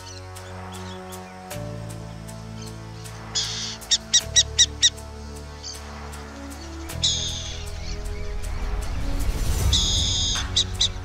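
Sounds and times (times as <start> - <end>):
background music: 0.0 - 11.0
owl hissing and chirping: 6.6 - 8.4.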